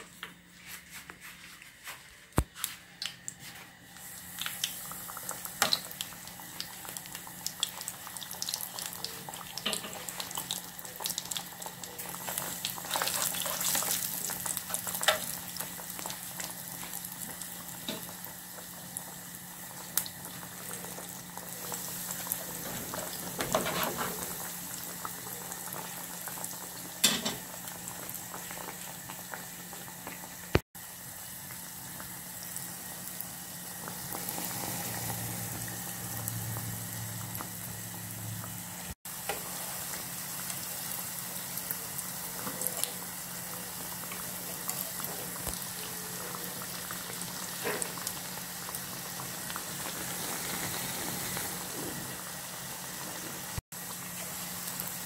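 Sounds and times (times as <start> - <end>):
doughnuts sizzling in hot oil: 2.7 - 55.0
metal utensils tapping pan: 27.0 - 27.4.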